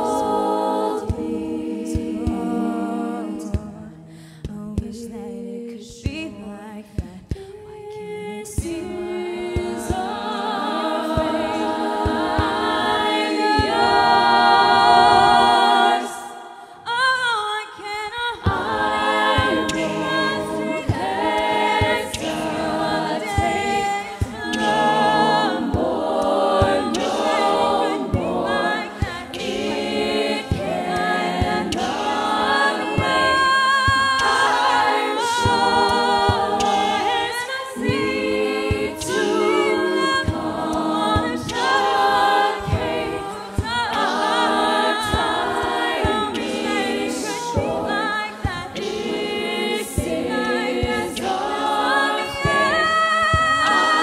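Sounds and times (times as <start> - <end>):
beatboxed vocal percussion: 0.0 - 16.8, 17.6 - 54.0
women singing in close harmony: 0.0 - 54.0.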